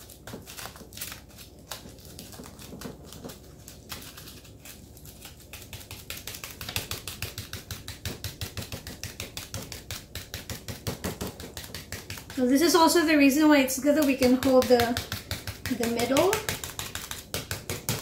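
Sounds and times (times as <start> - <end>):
crinkly foil taps: 0.0 - 18.0.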